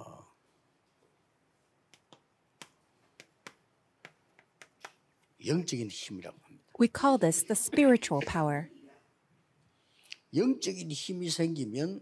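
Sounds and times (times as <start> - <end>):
chalk tapping on chalkboard: 1.9 - 5.0.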